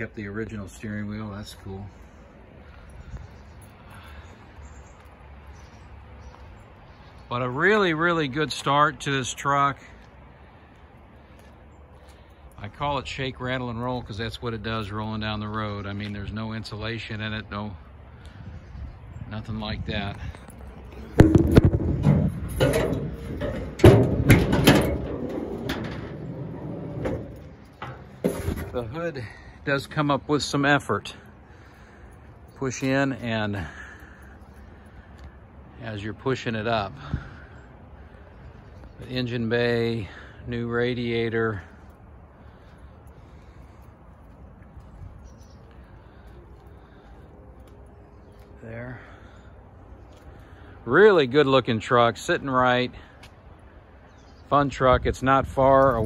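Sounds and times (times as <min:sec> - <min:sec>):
metal hood clunking and rattling: 0:21.2 - 0:28.9.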